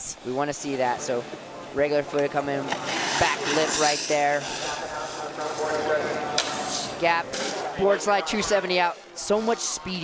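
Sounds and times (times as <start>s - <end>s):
snowboard sliding over snow: 2.7s - 7.6s.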